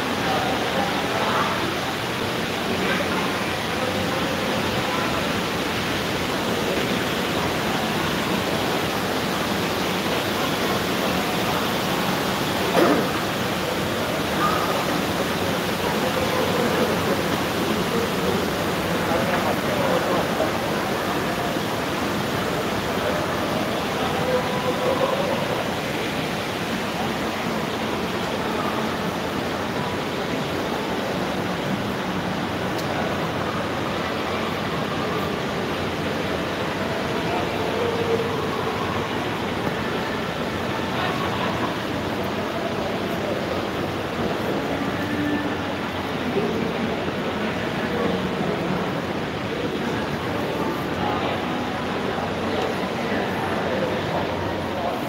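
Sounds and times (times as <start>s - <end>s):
distant voices: 0.0s - 55.0s.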